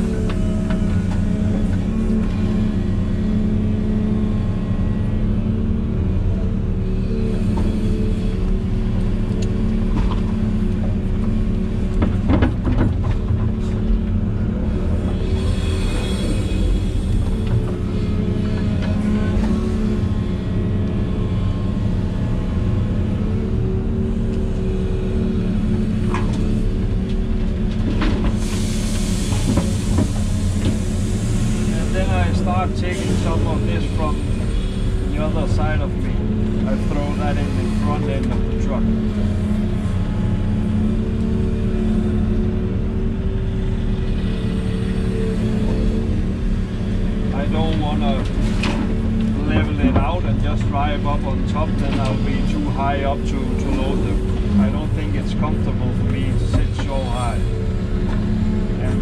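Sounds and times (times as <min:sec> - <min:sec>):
excavator diesel engine under load: 0:00.0 - 0:59.0.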